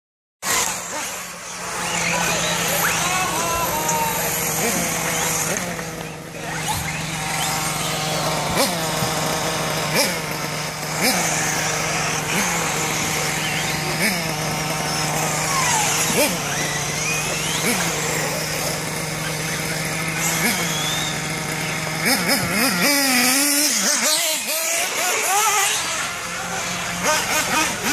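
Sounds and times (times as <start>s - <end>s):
rc buggy motors revving: 0.4s - 27.9s.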